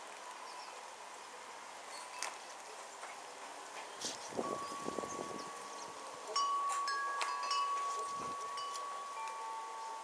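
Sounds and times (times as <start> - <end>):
chimes ringing: 4.4 - 10.0.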